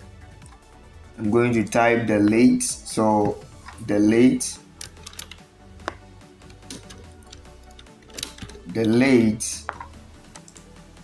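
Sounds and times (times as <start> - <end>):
quiet background music: 0.0 - 11.0
keyboard keys clicking: 4.8 - 9.0.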